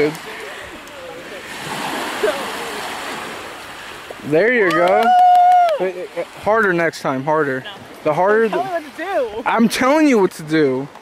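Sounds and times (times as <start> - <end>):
small waves washing onto beach: 0.0 - 11.0.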